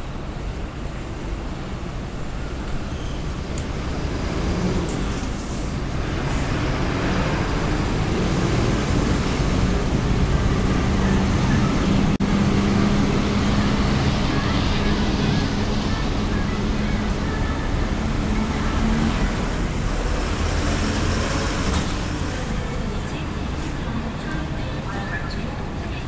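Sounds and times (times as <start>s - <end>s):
heavy vehicle engine rumble: 0.0s - 26.0s
street traffic: 0.0s - 26.0s.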